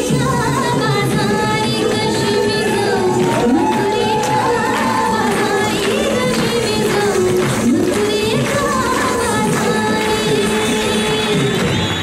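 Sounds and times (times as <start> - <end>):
drum beat: 3.0 - 12.0.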